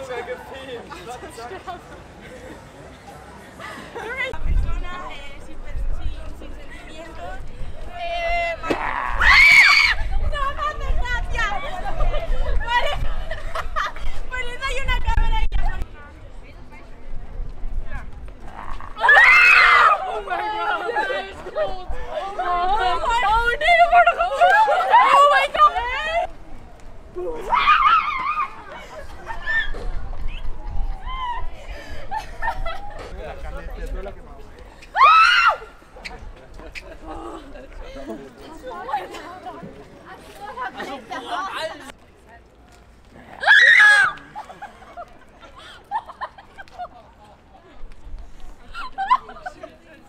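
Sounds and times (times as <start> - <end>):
people talking excitedly: 0.0 - 26.5, 27.2 - 42.5
people laughing: 11.5 - 14.2, 31.6 - 33.2, 44.2 - 47.4, 48.6 - 50.0.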